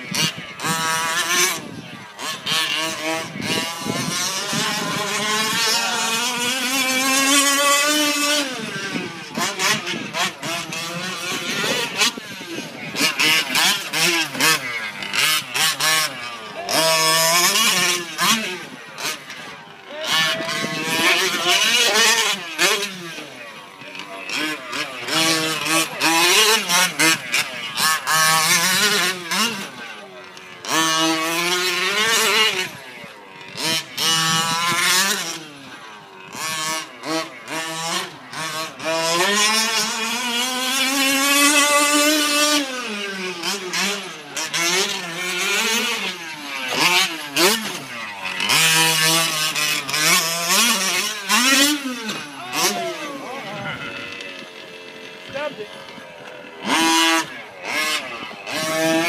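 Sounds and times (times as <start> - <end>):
small two-stroke engine revving: 0.0 - 59.0.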